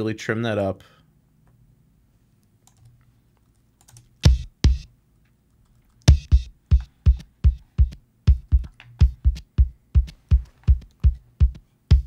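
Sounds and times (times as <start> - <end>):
kick drum hits: 4.2 - 4.9, 6.1 - 12.0.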